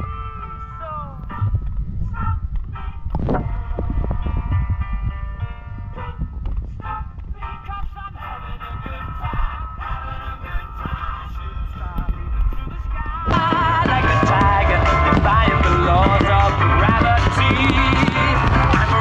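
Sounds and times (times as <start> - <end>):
music playing: 0.0 - 19.0
fireworks bangs and thumps: 12.0 - 19.0.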